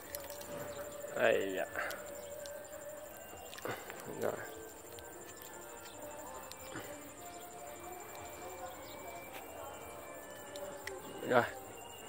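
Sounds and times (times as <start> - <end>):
insect trill: 0.0 - 12.0.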